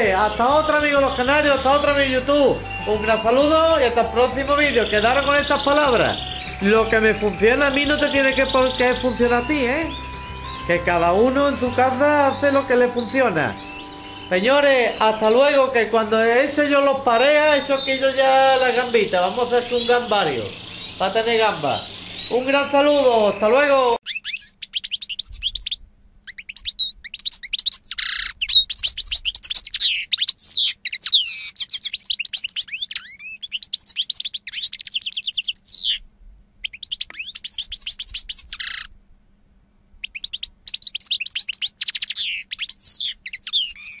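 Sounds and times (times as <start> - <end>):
canary singing: 0.0 - 36.0, 36.6 - 38.9, 40.0 - 44.0.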